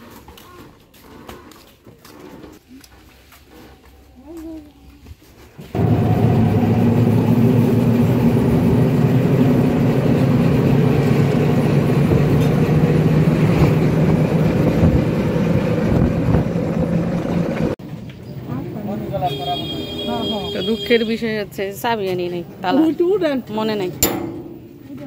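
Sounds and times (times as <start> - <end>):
road noise: 5.6 - 25.0
rattly passenger cabin: 5.7 - 17.8
auto-rickshaw engine running: 5.8 - 17.8.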